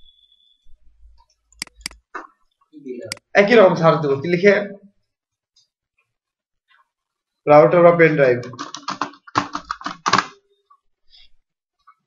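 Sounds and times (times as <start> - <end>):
computer keyboard typing: 8.4 - 10.4.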